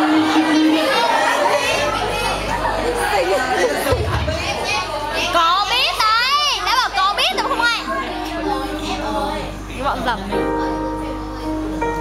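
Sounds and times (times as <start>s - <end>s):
teenagers shouting and squealing: 0.0s - 9.9s.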